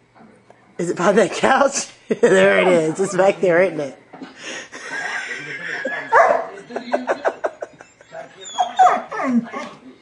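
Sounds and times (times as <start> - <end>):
dog whimpering and whining: 8.4 - 9.7.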